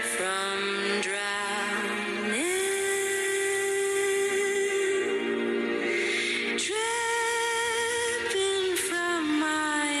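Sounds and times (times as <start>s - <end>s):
person singing long notes: 0.0s - 10.0s.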